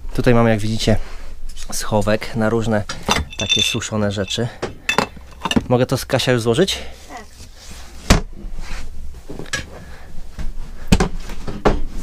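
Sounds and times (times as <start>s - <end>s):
light handling noise: 2.9s - 5.8s.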